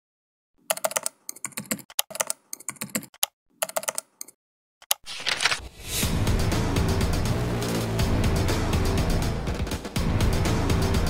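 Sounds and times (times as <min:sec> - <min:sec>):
keyboard typing: 0:00.6 - 0:05.6.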